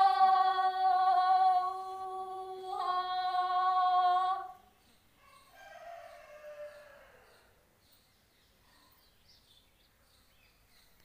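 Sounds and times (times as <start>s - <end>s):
rooster crowing: 5.2s - 7.6s.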